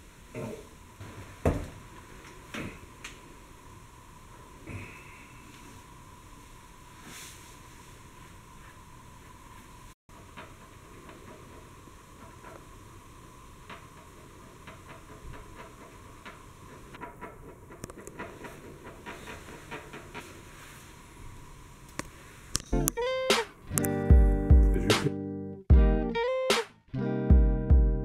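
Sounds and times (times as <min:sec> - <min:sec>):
steady hiss: 0:00.0 - 0:22.6.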